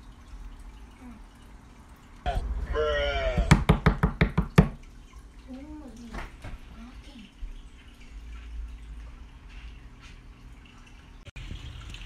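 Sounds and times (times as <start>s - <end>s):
person calling out: 2.3s - 3.7s
loud rapid knocks: 3.3s - 4.8s.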